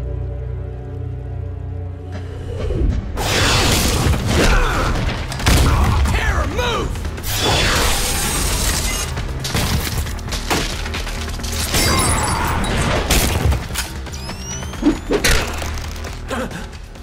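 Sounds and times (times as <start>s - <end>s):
dramatic music: 0.0s - 17.0s.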